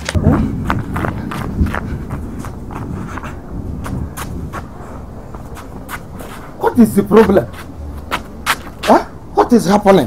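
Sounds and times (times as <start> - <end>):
footsteps running on dirt: 0.0 - 4.7.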